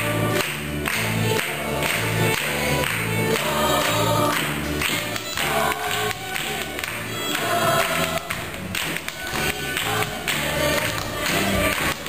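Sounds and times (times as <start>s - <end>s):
chorus of young voices singing: 0.0s - 12.0s
fiddles: 0.0s - 12.0s
rhythmic hand-clapping: 0.0s - 12.0s.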